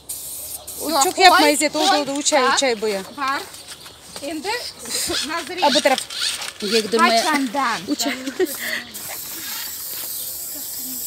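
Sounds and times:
aerosol spray can hissing: 0.0 - 1.6, 8.5 - 11.0.

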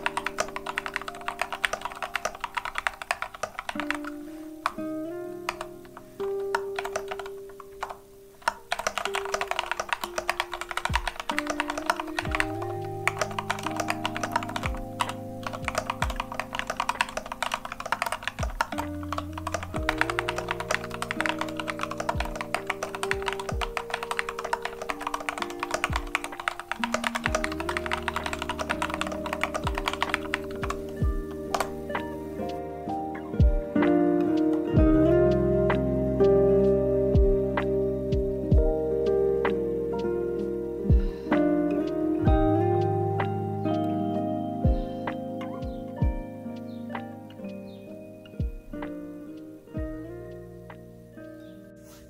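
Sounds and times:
typing on mechanical keyboard: 0.0 - 32.5
background music: 0.0 - 52.0.

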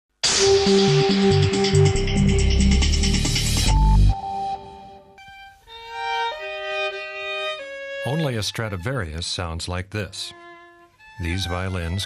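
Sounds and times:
violin playing slow held notes: 5.1 - 9.1, 10.2 - 12.0.

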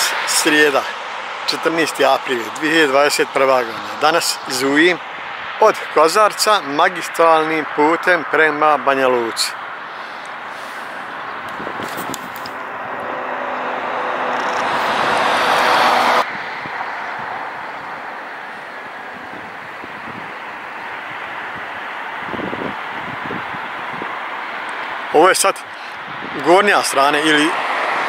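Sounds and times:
traffic hum: 0.0 - 28.0
vehicle passing: 0.0 - 28.0.

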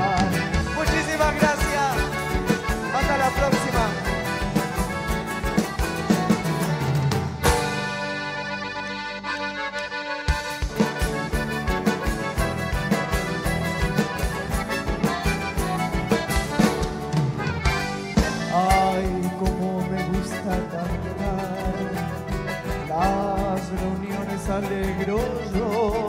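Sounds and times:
steady beat: 0.0 - 8.6, 9.8 - 25.8
accordion melody: 0.0 - 26.0
bass: 0.0 - 26.0
strummed acoustic guitars: 0.0 - 26.0.

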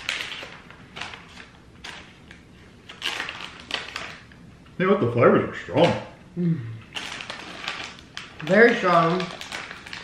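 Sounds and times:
candy packaging crinkling: 0.0 - 4.4, 6.8 - 10.0.

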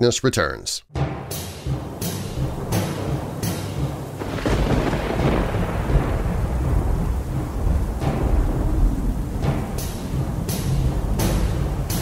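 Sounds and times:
music beat: 0.9 - 12.0
thunder rumbling: 2.3 - 12.0.

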